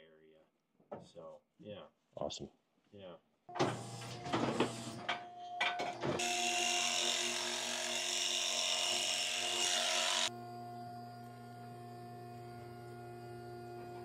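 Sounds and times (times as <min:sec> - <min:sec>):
electric hair clippers buzzing: 0:06.2 - 0:10.4.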